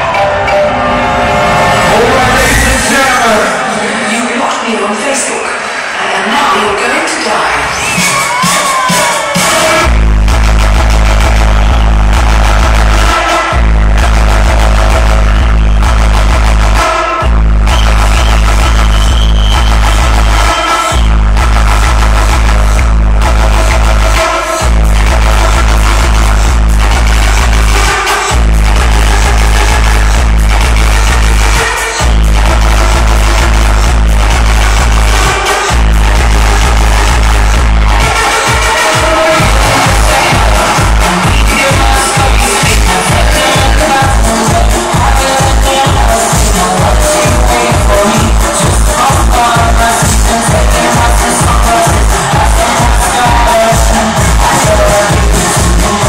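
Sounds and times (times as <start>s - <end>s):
heavy bass beat: 0.0s - 4.8s, 5.5s - 56.0s
electronic dance music: 0.0s - 56.0s.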